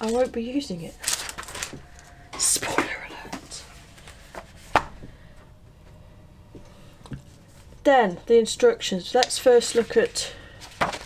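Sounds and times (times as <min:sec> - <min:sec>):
paper rustling: 0:00.0 - 0:04.9, 0:09.5 - 0:11.0
booklet slapping down: 0:04.3 - 0:05.1, 0:10.6 - 0:11.0.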